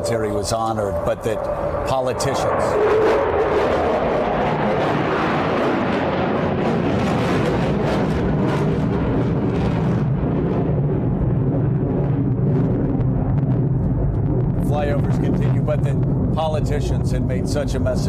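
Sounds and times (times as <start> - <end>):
fighter jets roaring overhead: 0.0 - 18.0.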